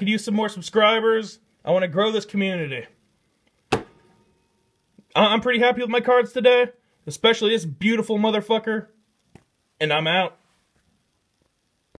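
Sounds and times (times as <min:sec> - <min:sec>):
sharp knock: 0:03.7 - 0:04.2.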